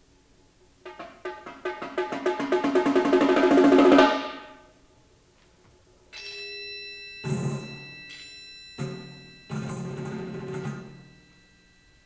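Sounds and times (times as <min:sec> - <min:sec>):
rapid pitched percussion strokes: 0:00.8 - 0:04.7, 0:06.2 - 0:12.0.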